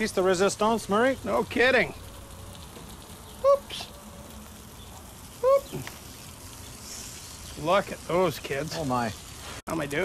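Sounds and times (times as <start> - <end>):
high-pitched vocal calls: 2.0 - 7.5.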